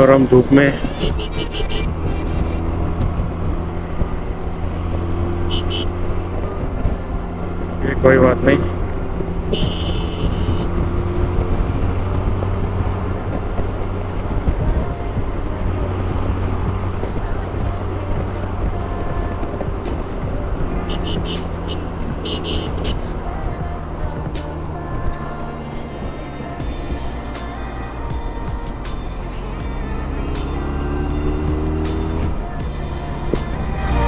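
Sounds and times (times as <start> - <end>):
motorcycle engine drone: 0.0 - 34.0
wind and road noise: 0.0 - 34.0.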